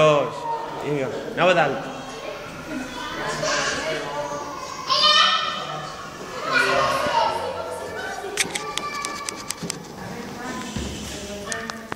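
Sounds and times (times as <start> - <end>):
distant children's voices: 0.1 - 11.9.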